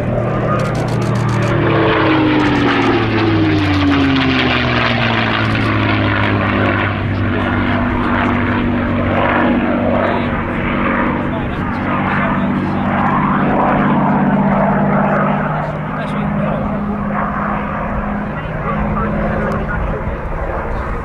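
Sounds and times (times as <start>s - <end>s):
propeller plane engine passing: 0.0s - 21.0s.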